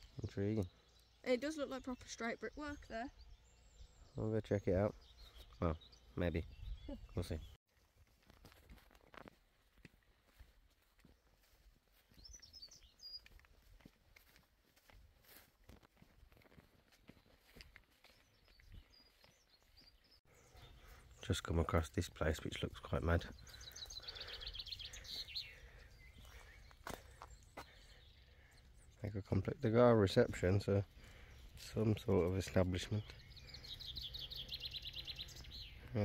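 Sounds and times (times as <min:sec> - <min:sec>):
small bird chirping: 0:00.0 - 0:07.6, 0:11.4 - 0:14.3, 0:17.1 - 0:36.0
soft footsteps on paving: 0:07.7 - 0:20.3, 0:25.6 - 0:28.7.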